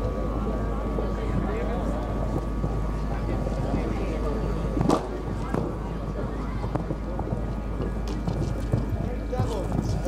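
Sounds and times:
wind rumble on microphone: 0.1 - 10.0.

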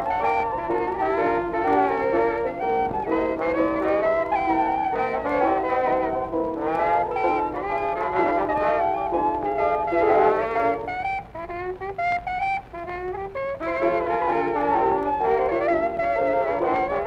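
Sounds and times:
jazz band horns: 0.0 - 17.0
solo horn with bent notes: 0.0 - 17.0.

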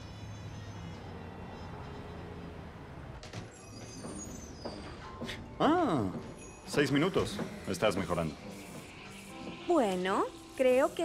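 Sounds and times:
faint music: 0.0 - 11.0.

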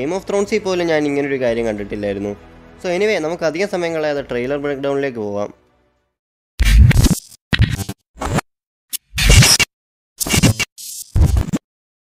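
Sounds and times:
stuttering glitchy electronic bursts: 6.6 - 8.4, 9.1 - 11.6.

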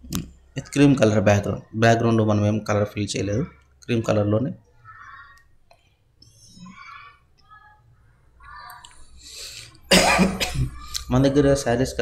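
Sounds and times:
person coughing: 9.9 - 10.8.

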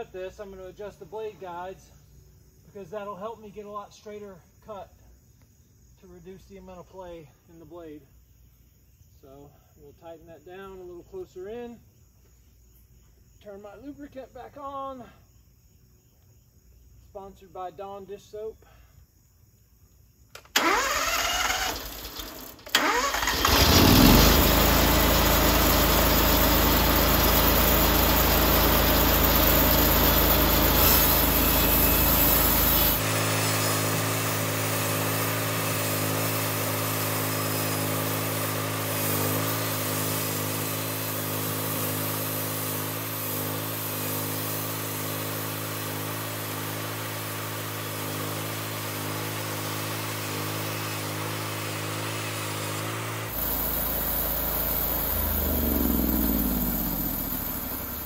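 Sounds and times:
engine cranking: 20.4 - 33.0, 53.3 - 58.0
bandsaw cutting log: 20.6 - 58.0
engine running: 20.6 - 58.0.

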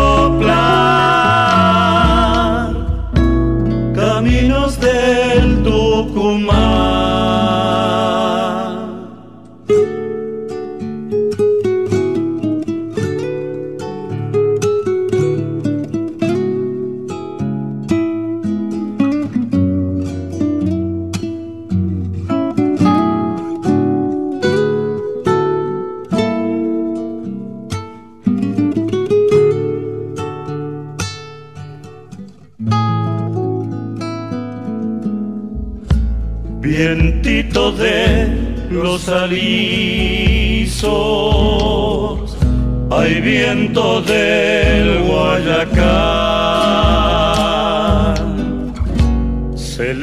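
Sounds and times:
bass line: 0.0 - 9.1, 35.5 - 50.0
acoustic guitar: 0.0 - 50.0.

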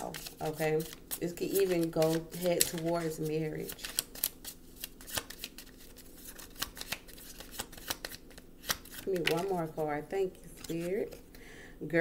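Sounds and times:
cards being shuffled by hand: 0.0 - 9.9, 10.5 - 11.2.

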